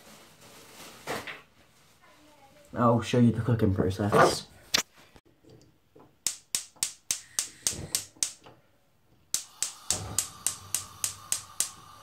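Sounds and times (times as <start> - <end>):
gas igniter clicking rapidly: 6.3 - 8.4, 9.3 - 12.0
gas hissing: 6.8 - 8.4, 9.3 - 12.0.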